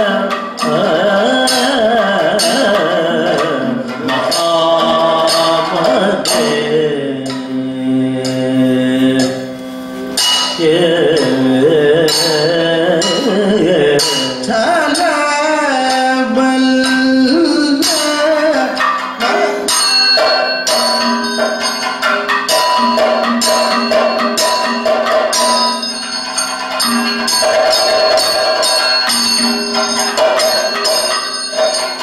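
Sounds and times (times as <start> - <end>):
metal percussion strikes ringing: 0.0 - 32.0.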